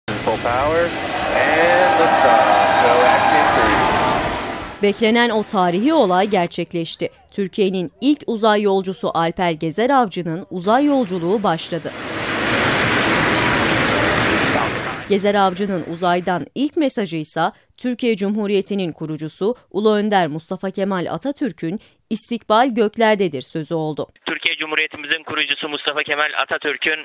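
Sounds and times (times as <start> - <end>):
rocket engines roaring: 0.1 - 6.4, 10.8 - 16.0
excited voices calling out: 0.9 - 4.4.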